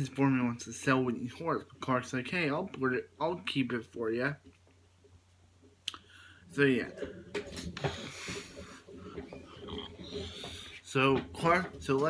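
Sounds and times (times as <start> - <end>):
rustling of movement: 4.4 - 12.0
person breathing and snorting: 6.0 - 10.8.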